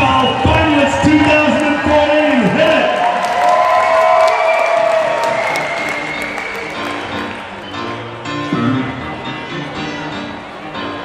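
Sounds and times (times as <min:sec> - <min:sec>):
audience applause: 0:00.0 - 0:08.0
music over speakers: 0:04.8 - 0:11.0.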